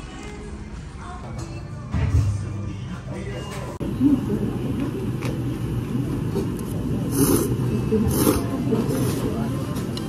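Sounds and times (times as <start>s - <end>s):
noodles being slurped: 7.1s - 9.2s.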